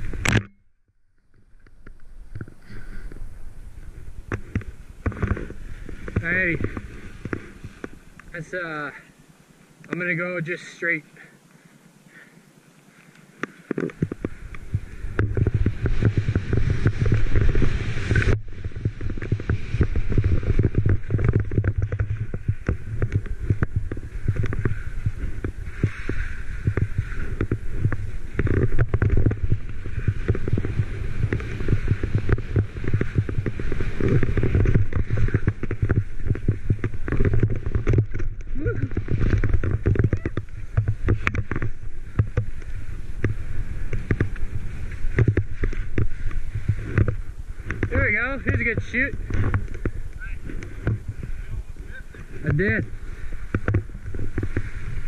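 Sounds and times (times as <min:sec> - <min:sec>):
wind on microphone: 0:00.0 - 0:00.5, 0:01.3 - 0:08.7, 0:13.8 - 0:55.0
skis sliding through powder snow: 0:01.5 - 0:55.0.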